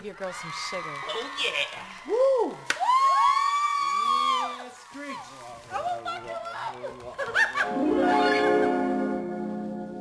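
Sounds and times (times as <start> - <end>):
person whooping: 2.0 - 4.6.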